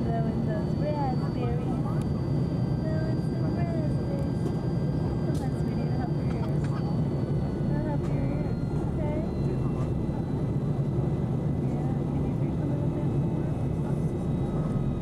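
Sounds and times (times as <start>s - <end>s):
airliner engine drone: 0.0s - 15.0s
thin steady whines: 0.0s - 15.0s.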